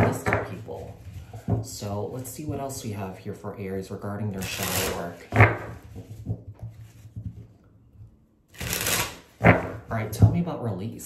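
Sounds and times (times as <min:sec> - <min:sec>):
cards being shuffled by hand: 0:04.4 - 0:07.6, 0:08.6 - 0:09.9.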